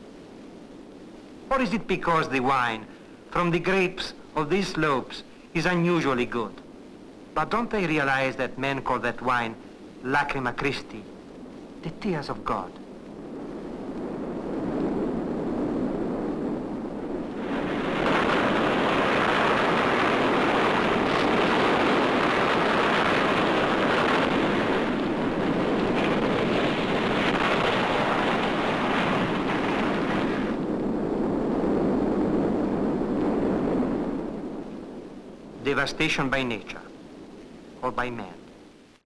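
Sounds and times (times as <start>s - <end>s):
steady rushing noise: 0.0s - 39.0s.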